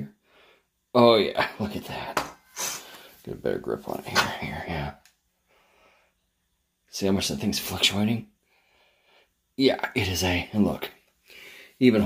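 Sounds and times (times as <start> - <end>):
faint soft breath: 0.2 - 0.8, 2.4 - 3.3, 5.4 - 6.3, 8.4 - 9.5, 11.2 - 11.8.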